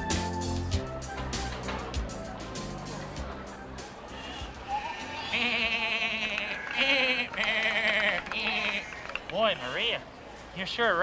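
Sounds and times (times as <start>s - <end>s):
music: 0.0s - 5.6s
sheep bleating: 4.7s - 9.1s.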